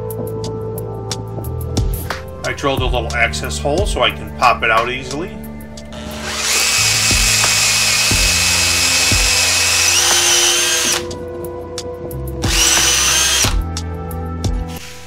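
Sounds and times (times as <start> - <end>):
background music with beat: 0.0 - 15.0
cordless drill whining: 5.9 - 11.1, 12.4 - 13.6, 14.7 - 15.0.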